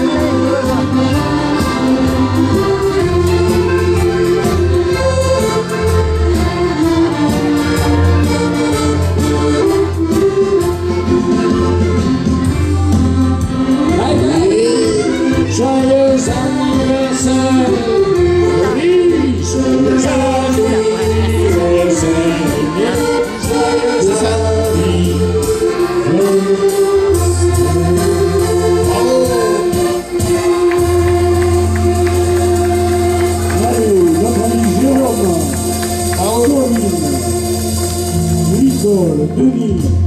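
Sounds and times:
voices singing: 0.0 - 8.9, 11.6 - 38.8
accordions playing dance tune: 0.0 - 40.0
bass and drums beat: 0.0 - 40.0
electric guitar: 0.0 - 40.0.

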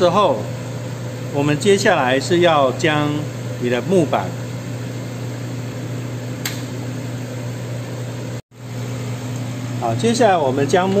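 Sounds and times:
short click: 6.4 - 6.8.

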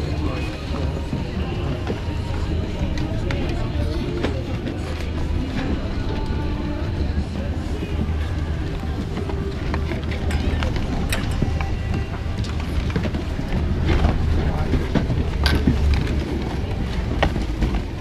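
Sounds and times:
indistinct voices: 0.0 - 18.0
music: 0.0 - 18.0
steady low rumble: 0.0 - 18.0
skis and poles clacking: 2.9 - 18.0.

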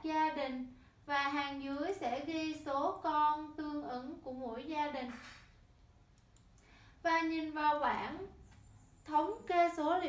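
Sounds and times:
woman speaking: 0.0 - 5.2, 7.1 - 8.4, 9.1 - 10.0.

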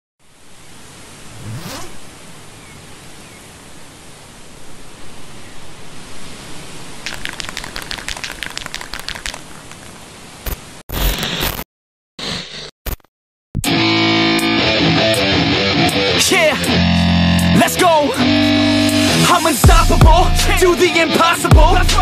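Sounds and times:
whoosh rising in pitch: 1.2 - 2.3
fast run of sharp clicks: 7.1 - 10.6.

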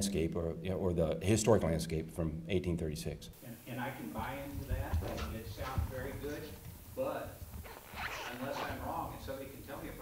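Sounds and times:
man talking into a microphone: 0.0 - 7.4, 8.1 - 10.0.

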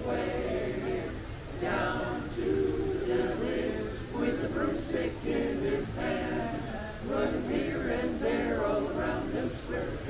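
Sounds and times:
men's chorus singing a cappella: 0.0 - 10.0.

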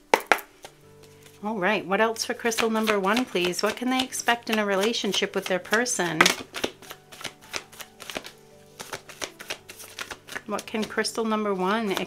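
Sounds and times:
faint background music: 0.0 - 12.0
cards being shuffled: 0.1 - 1.4, 2.4 - 12.0.

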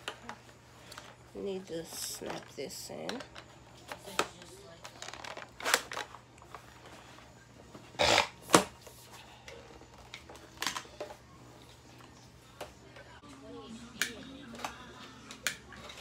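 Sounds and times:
plastic parts clicking and knocking: 2.1 - 6.2, 9.5 - 11.2.

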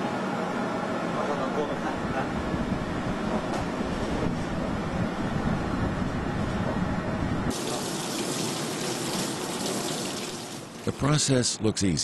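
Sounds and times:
tap water rinsing hands: 7.5 - 11.0.

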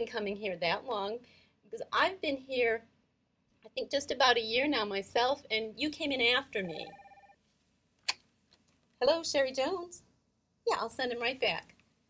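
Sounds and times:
desk phone ringing: 6.7 - 7.4.

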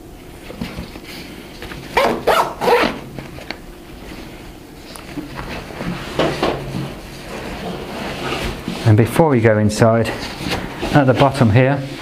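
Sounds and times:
pocket zipper closing: 2.0 - 3.0.

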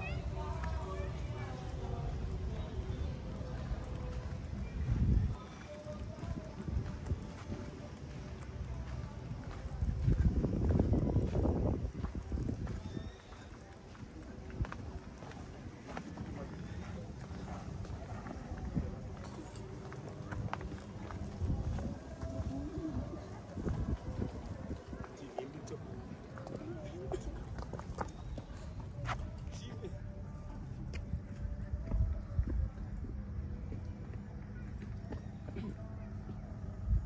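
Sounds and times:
people talking faintly: 0.0 - 37.0.

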